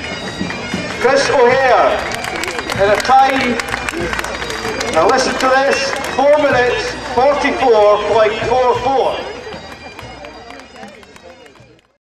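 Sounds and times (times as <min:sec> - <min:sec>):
crowd chatter outdoors: 0:00.0 - 0:12.0.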